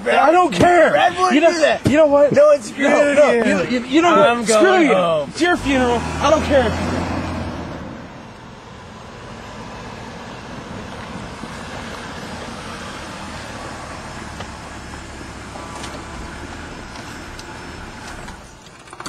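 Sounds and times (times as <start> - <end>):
car engine running: 0.0 - 19.0.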